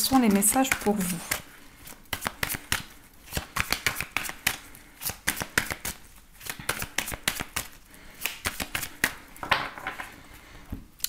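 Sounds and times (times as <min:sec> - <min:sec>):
cards being shuffled: 0:00.4 - 0:09.3.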